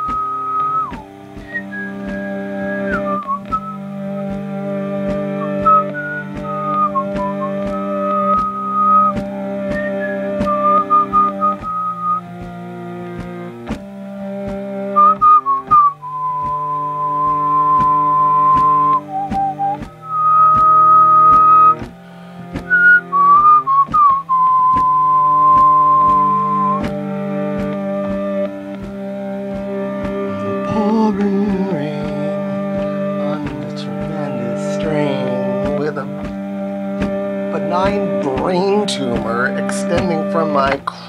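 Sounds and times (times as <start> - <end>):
whistled melody: 0.0 - 13.9, 14.5 - 41.0
harmonium chords: 0.0 - 41.0
sharp ticks: 4.3 - 13.8, 17.2 - 22.0.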